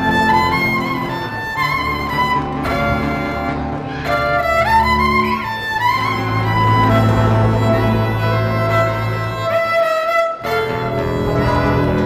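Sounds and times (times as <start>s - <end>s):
acoustic band playing folk tunes: 0.0s - 12.0s
violin melody: 0.0s - 12.0s.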